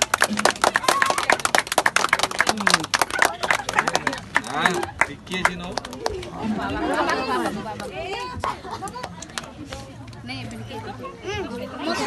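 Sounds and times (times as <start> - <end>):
party chatter: 0.0 - 12.0.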